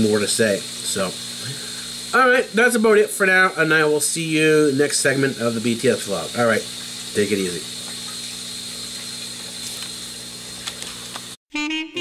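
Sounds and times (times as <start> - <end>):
low electrical hum: 0.0 - 11.4.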